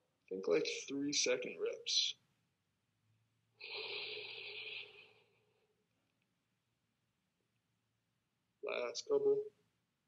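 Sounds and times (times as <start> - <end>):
person exhaling: 3.6 - 5.2.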